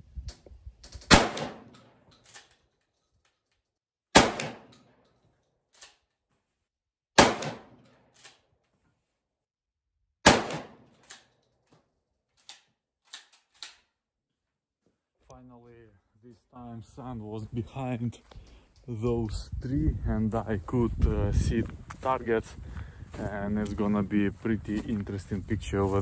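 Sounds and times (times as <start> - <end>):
shotgun shots with echo: 1.1 - 1.9, 4.1 - 4.8, 7.2 - 7.8, 10.2 - 11.0.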